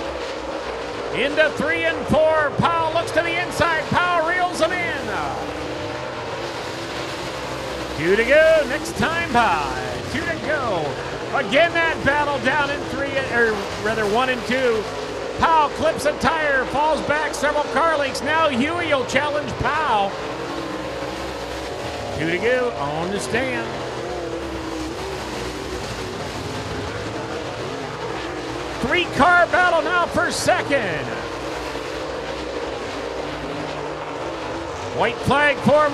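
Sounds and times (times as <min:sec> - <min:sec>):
race car engines running hard: 0:00.0 - 0:35.9.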